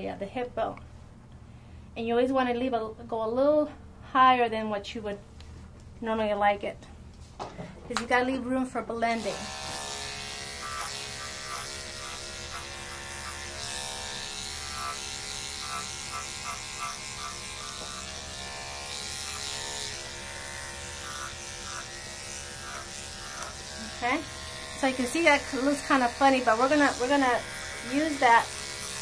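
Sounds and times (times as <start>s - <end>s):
electric clippers humming: 9.0s - 29.0s.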